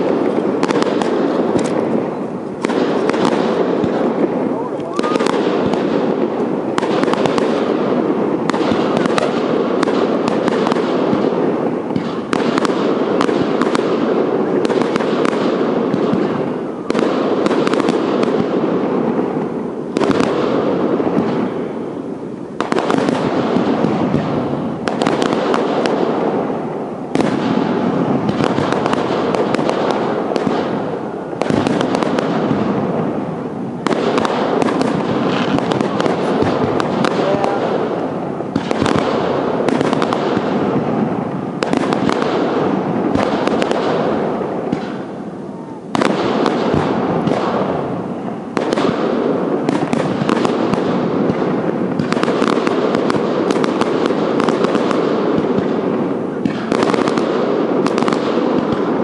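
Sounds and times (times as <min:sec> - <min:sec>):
fireworks bursting and crackling: 0:00.0 - 0:59.0.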